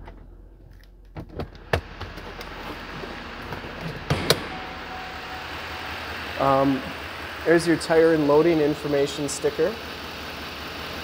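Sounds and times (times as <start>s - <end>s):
diesel engine idling: 1.6s - 11.0s.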